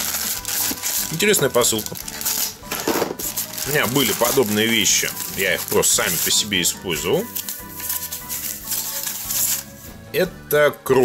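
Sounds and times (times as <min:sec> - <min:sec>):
plastic wrap rustling and crinkling: 0:00.0 - 0:10.0
background music: 0:00.0 - 0:11.0.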